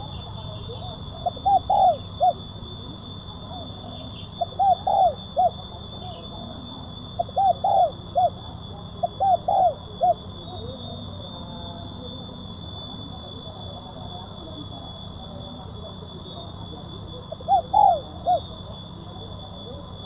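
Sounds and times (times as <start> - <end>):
dove cooing: 0.0 - 12.1, 17.3 - 18.7.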